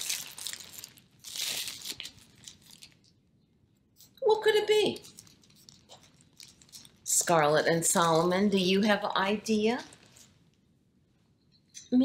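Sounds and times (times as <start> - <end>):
plastic bag crinkling: 0.0 - 3.3, 4.8 - 8.3.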